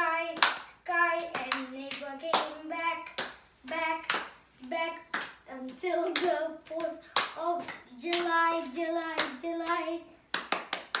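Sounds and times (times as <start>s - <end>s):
hands clapping: 0.3s - 11.0s.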